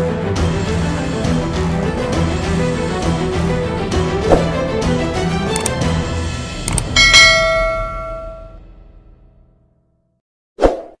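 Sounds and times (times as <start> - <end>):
background music: 0.0 - 9.6
bell ding: 6.7 - 8.6.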